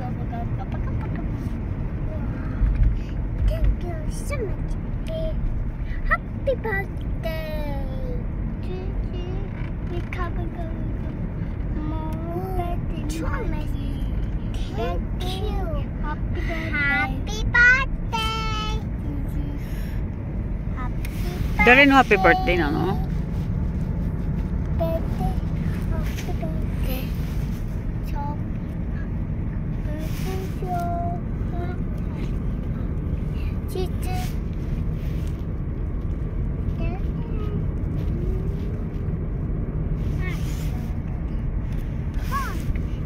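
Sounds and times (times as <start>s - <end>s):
road and engine rumble in car: 0.0s - 43.0s.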